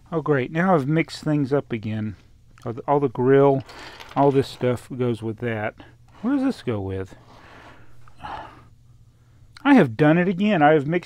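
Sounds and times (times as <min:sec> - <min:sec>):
man breathing: 0:07.2 - 0:09.5.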